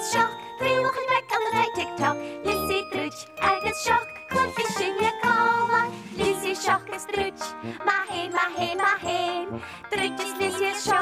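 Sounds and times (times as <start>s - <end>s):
bright instrumental theme music: 0.0s - 11.0s.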